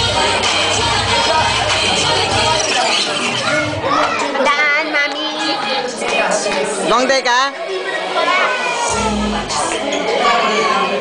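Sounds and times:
children calling out and squealing: 2.4 - 5.9, 7.6 - 11.0.

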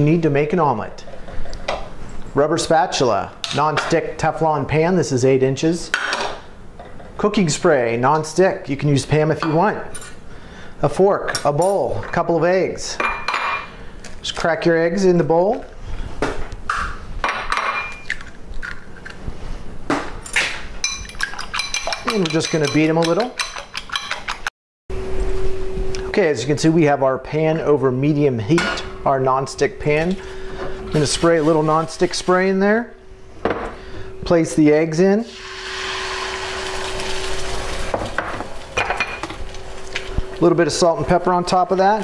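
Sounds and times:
eggs sizzling in a pan: 35.3 - 40.4.

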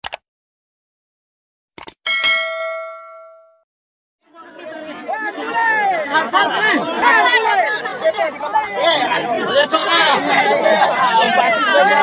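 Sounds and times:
cursor clicks: 0.0 - 0.2, 1.8 - 2.0
bright bell ding: 2.1 - 3.6.

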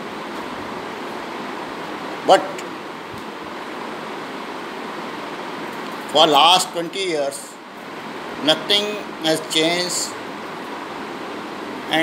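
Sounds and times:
room noise hiss: 0.0 - 12.0.

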